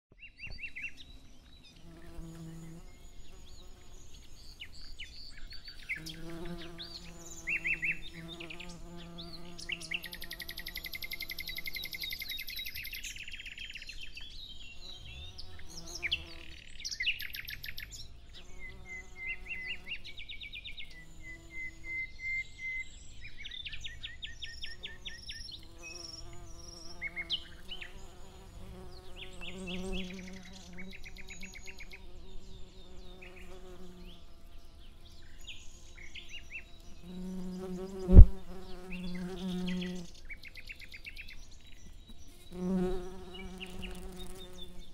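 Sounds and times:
songbirds singing: 0:00.1 - 0:44.9
insects buzzing: 0:01.8 - 0:12.9, 0:24.7 - 0:40.3, 0:42.3 - 0:44.9.

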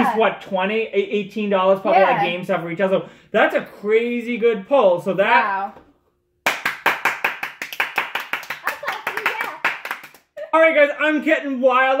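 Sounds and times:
people clapping hands: 0:06.4 - 0:10.4.

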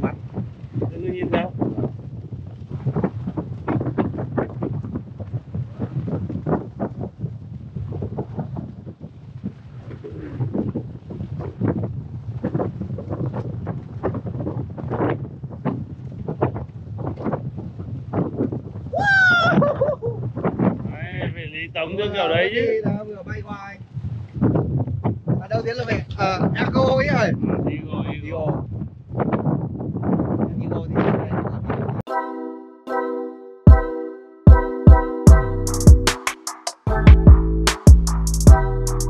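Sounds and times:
wind buffeting microphone: 0:00.0 - 0:32.1
person calling out: 0:19.0 - 0:19.7.

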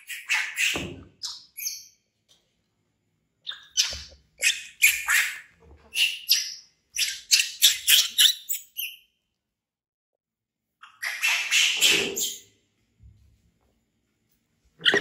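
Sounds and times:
baby monkey screaming: 0:00.0 - 0:01.9, 0:03.5 - 0:09.0, 0:10.8 - 0:12.5.

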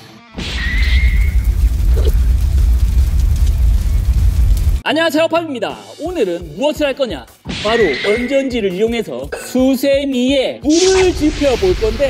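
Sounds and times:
steel wool burning with low rumble: 0:00.4 - 0:04.8.

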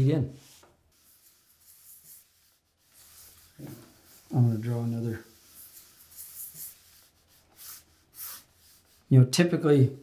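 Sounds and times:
marker scratching on paper: 0:00.4 - 0:09.1.

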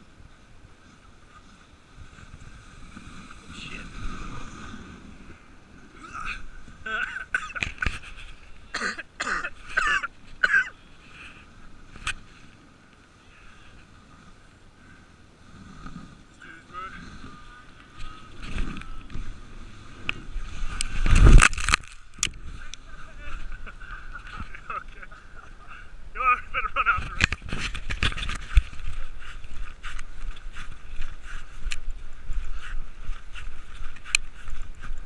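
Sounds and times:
sled runners scraping over snow: 0:27.4 - 0:35.0.

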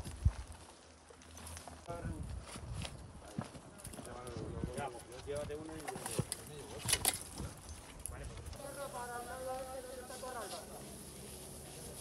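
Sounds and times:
footsteps on rough ground: 0:00.0 - 0:12.0.

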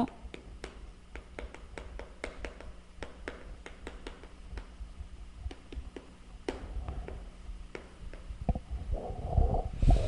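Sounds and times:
chalk knocking on blackboard: 0:00.3 - 0:04.7.

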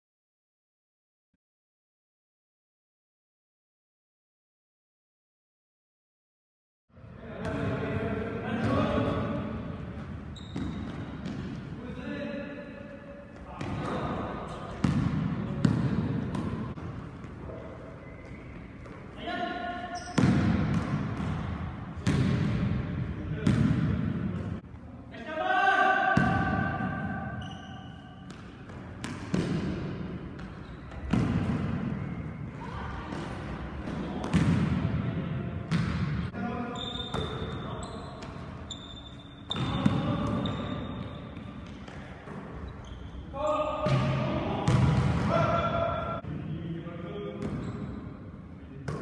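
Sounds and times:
basketball bouncing in a hall: 0:07.3 - 0:11.8, 0:13.3 - 0:24.9, 0:26.0 - 0:46.4, 0:47.3 - 0:49.0.

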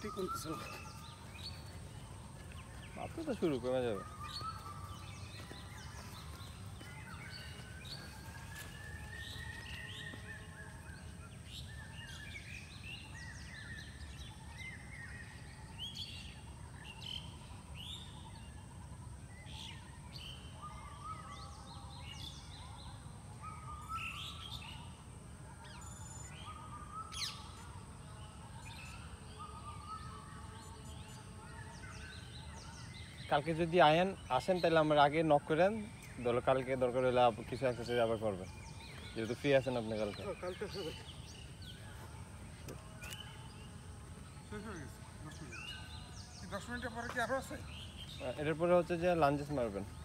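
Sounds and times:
birds chirping and calling: 0:00.0 - 0:50.0.

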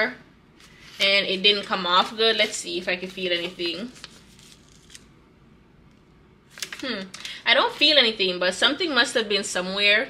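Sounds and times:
paper rustling: 0:00.6 - 0:05.0, 0:06.5 - 0:08.0.

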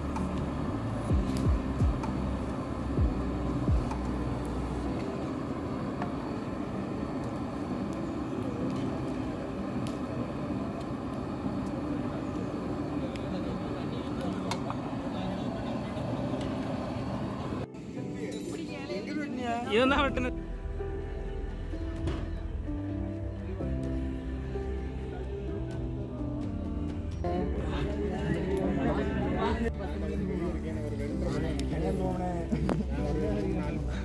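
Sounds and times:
gas burner roaring: 0:00.0 - 0:18.6, 0:19.9 - 0:34.0.

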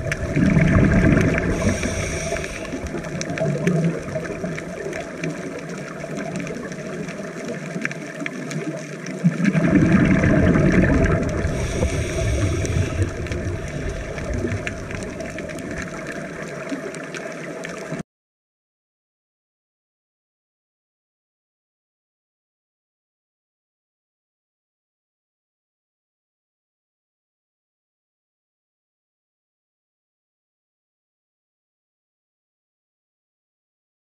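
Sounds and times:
bubble exhalations underwater: 0:00.0 - 0:17.0
underwater wash: 0:00.0 - 0:18.0
regulator hiss: 0:01.4 - 0:03.3, 0:11.4 - 0:15.2.

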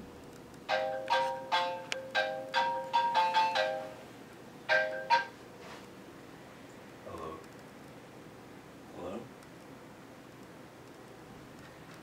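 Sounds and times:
mobile phone ringtone: 0:00.7 - 0:04.0, 0:04.7 - 0:05.4.

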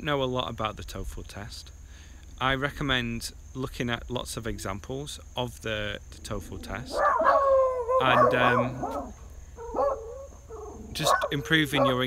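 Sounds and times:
dog barking: 0:06.9 - 0:12.0.

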